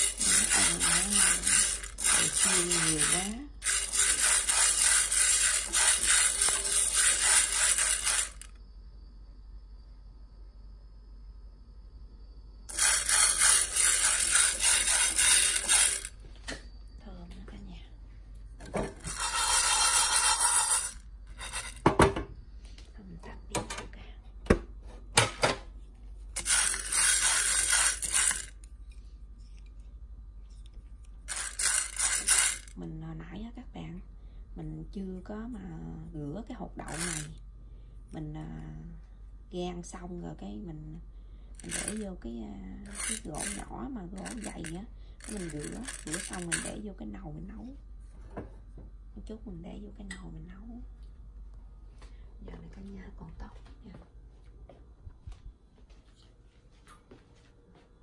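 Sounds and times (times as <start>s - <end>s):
beans rattling and scraping in pan: 0.0s - 8.5s, 12.7s - 16.1s, 18.9s - 21.8s, 26.4s - 28.6s, 31.3s - 32.7s, 36.9s - 37.3s, 41.6s - 42.0s, 42.9s - 46.8s.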